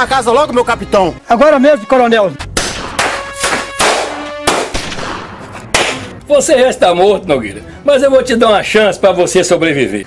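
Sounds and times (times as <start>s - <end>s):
background music: 0.0s - 10.0s
rifle shots: 2.6s - 6.1s.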